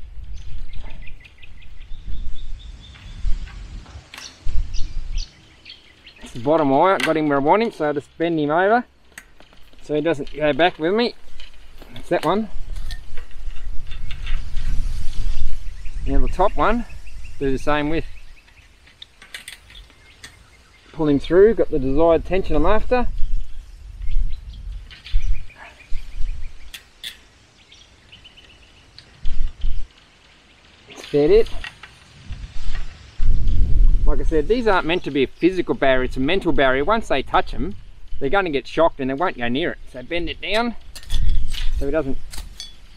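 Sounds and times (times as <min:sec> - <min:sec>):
wind on microphone: 0:00.0 - 0:07.6, 0:09.7 - 0:18.8, 0:19.4 - 0:27.2, 0:29.0 - 0:30.0, 0:30.9 - 0:42.9
fence wire rustling and clicking: 0:03.0 - 0:04.5, 0:05.6 - 0:15.6, 0:17.4 - 0:21.5, 0:26.6 - 0:33.0, 0:39.2 - 0:42.9.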